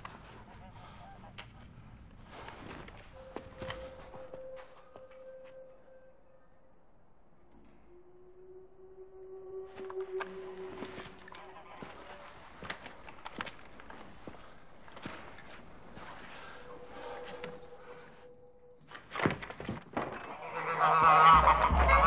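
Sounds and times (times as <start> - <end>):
geese honking: 0.0 - 1.7, 7.7 - 14.1, 20.0 - 22.0
steady held tone: 3.1 - 12.6, 16.1 - 19.0.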